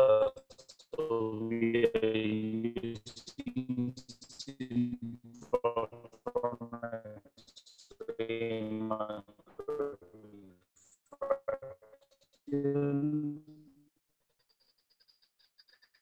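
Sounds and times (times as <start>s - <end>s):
man's garbled voice on video call: 0.0s - 0.4s, 1.0s - 7.2s, 8.0s - 10.5s, 12.5s - 13.5s.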